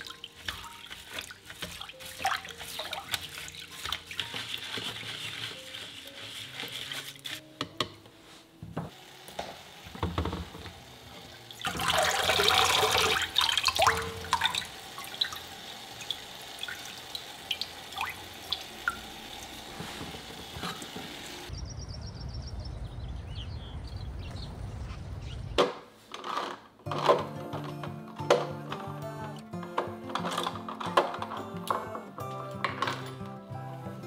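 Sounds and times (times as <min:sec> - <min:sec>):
water dripping: 0:11.6 - 0:19.6.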